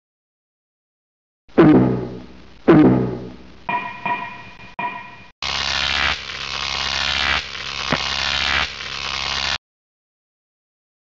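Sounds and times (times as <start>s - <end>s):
low electrical hum: 1.9s - 4.5s.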